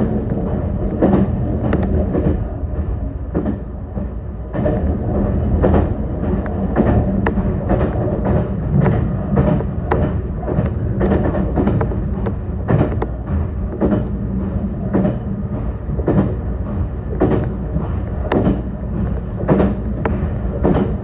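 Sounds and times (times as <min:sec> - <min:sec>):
train low rumble: 0:00.0 - 0:21.0
train wheel clacks: 0:00.0 - 0:21.0.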